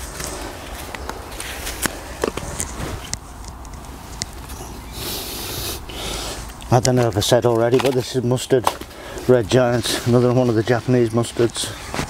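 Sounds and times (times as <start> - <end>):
rustling and scraping of soil: 0.0 - 12.0
plastic plant pots clicking: 0.2 - 4.7, 6.4 - 10.2.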